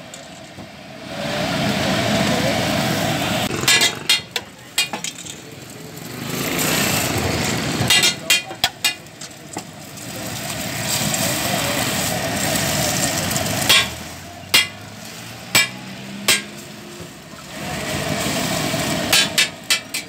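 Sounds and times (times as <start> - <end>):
continuous rushing noise: 0.0 - 20.0
metal spatula scraping griddle: 3.5 - 5.2.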